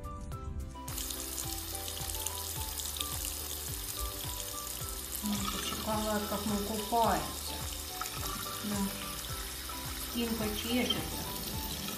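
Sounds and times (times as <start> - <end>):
background music: 0.0 - 11.9
tap water running into sink: 0.8 - 11.9.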